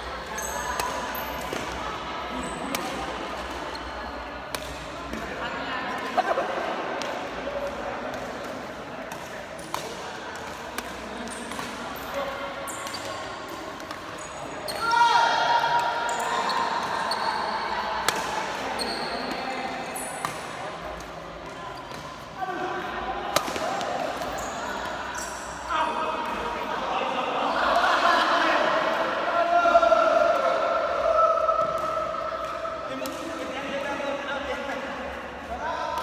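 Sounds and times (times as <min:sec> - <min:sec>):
sneakers squeaking on court: 0:00.2 - 0:01.6, 0:12.7 - 0:13.4, 0:16.1 - 0:17.7, 0:18.6 - 0:20.4, 0:24.2 - 0:25.6
rackets striking shuttlecock: 0:04.4 - 0:05.2, 0:08.1 - 0:11.9, 0:23.3 - 0:25.0.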